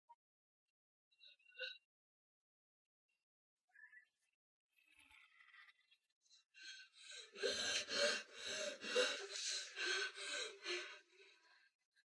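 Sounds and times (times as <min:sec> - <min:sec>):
person panting heavily: 0:07.0 - 0:11.3.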